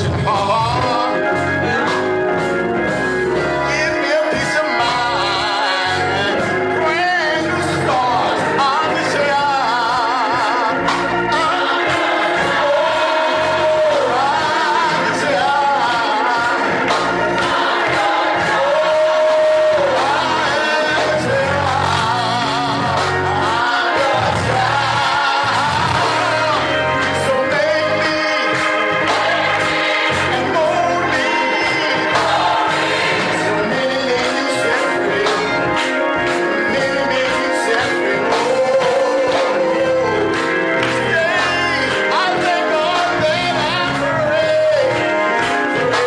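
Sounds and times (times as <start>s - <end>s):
gospel singing: 0.0s - 46.0s
organ chords: 0.0s - 46.0s.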